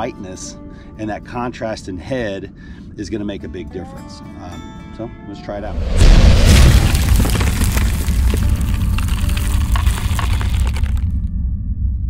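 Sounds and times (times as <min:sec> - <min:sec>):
deep rumble with crackling: 0:05.9 - 0:12.0.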